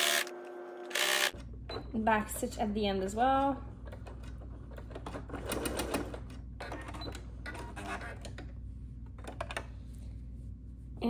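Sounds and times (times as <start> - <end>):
sewing machine stitching: 4.2 - 8.3.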